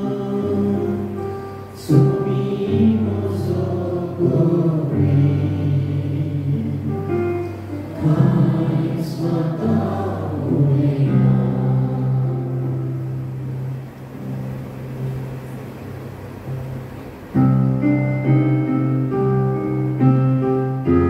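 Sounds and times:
choir singing a chant: 0.0 - 6.9, 7.8 - 12.7.

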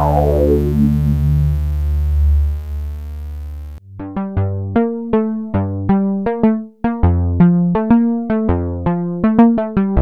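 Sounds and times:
synthesizer sustained low note: 0.0 - 6.4.

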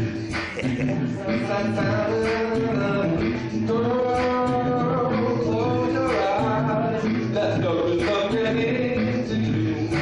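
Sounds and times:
live music: 0.0 - 10.0.

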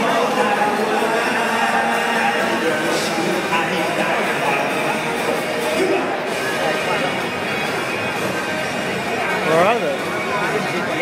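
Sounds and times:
rock band over loudspeakers: 0.0 - 11.0.

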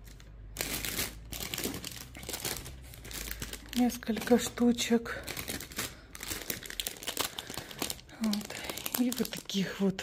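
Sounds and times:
plastic packaging crinkling: 0.0 - 10.0.

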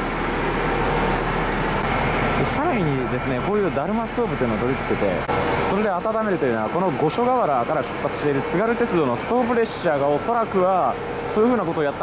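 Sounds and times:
diesel railcar engines idling: 0.0 - 12.0.

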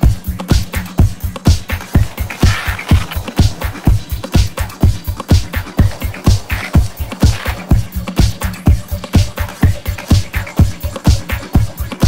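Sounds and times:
hissing swell: 1.7 - 9.0.

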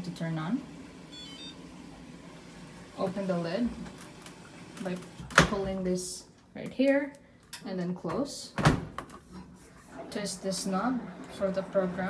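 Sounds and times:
appliance power-on chime beeps: 1.1 - 1.6.

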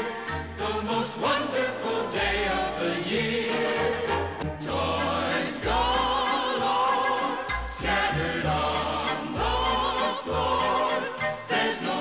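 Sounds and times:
instrumental accompaniment: 0.0 - 2.2
women singing with vibrato: 0.0 - 12.0.

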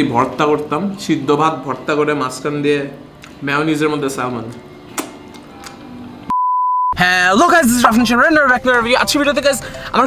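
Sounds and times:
high censor bleep: 6.3 - 7.0.

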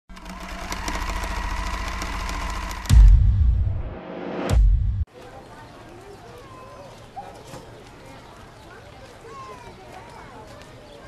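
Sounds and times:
sewing machine stitching: 0.1 - 2.9.

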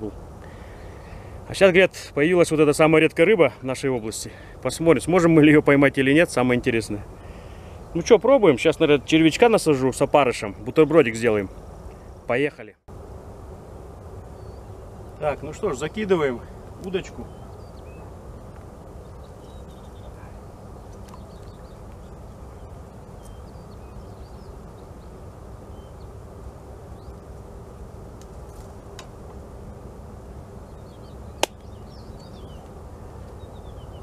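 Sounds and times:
faint steady hum: 0.0 - 34.0
faint bird chirps: 14.2 - 26.2, 30.6 - 34.0.

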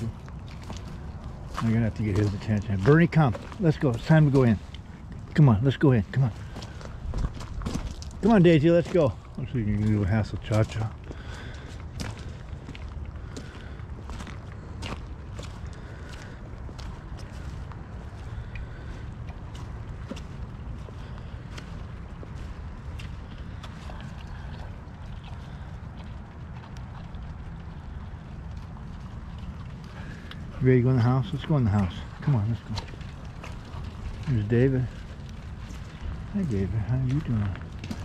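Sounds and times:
footsteps through wet grass: 0.0 - 38.0
wind rumble on microphone: 0.0 - 38.0.

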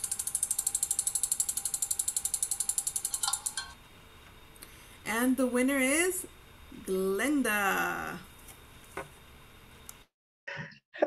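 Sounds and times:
spinning wheel ticking: 0.0 - 3.8.

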